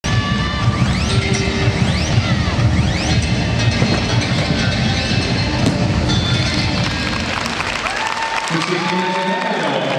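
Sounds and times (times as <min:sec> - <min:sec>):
music with pulsing bass: 0:00.0 - 0:07.9
hubbub of hall: 0:00.0 - 0:09.9.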